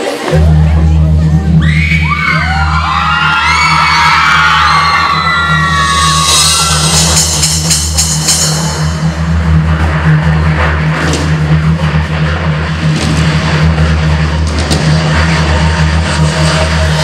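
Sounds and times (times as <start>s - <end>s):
low bass drone: 0.2s - 17.0s.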